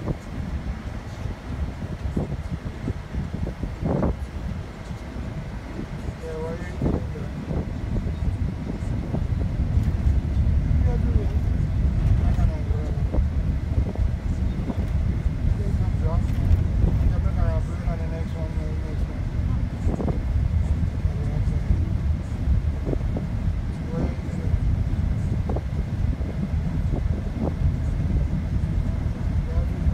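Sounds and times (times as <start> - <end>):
faint voices murmuring: 0.0 - 29.9
road and engine noise in cabin: 0.0 - 29.9.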